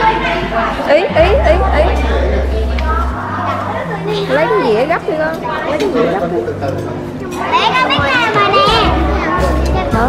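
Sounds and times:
children talking and calling out: 0.0 - 6.2, 7.0 - 10.0
background music with bass line: 7.9 - 10.0.

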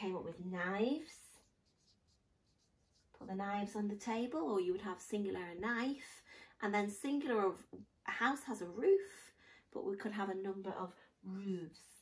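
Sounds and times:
marker pen writing on paper: 1.4 - 3.2.

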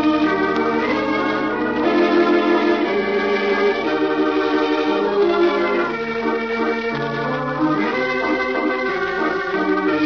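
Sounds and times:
organ playing held chords: 0.0 - 10.0.

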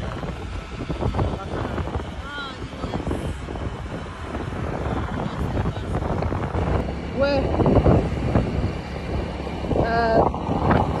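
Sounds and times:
car road and engine noise: 0.0 - 11.0
wind buffeting microphone: 0.0 - 11.0.

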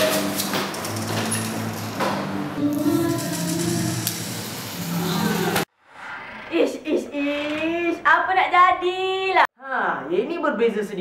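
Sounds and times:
background music with low notes: 0.0 - 5.6
indistinct voices: 2.6 - 4.3.

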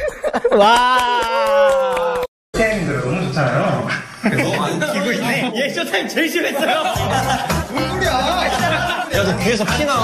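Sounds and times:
young men talking: 2.6 - 10.0.

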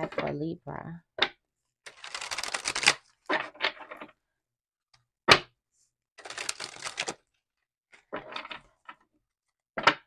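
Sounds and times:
cards being shuffled: 1.9 - 3.2, 6.2 - 7.3.

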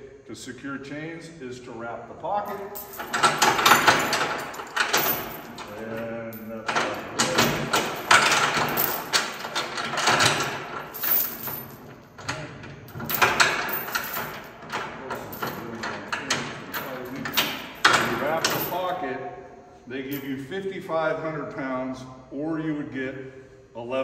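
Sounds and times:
steel chain rattling and clanking: 2.4 - 19.0, 20.1 - 20.4.

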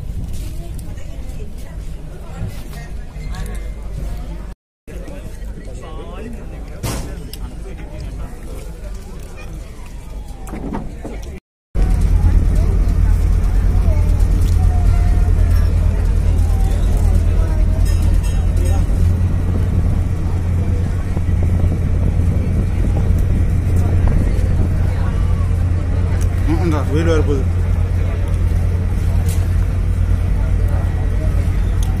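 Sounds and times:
people's voices: 0.4 - 32.0
ferry engine drone: 1.3 - 32.0.

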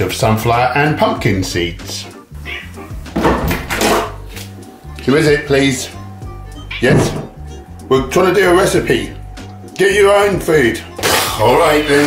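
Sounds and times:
background music with bass line: 0.0 - 12.0
cat meowing: 2.3 - 3.0, 6.5 - 7.5.

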